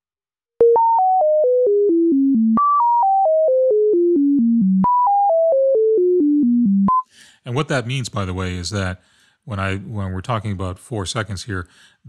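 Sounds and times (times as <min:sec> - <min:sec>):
synthesizer sine tone stepping down: 0:00.6 - 0:07.0.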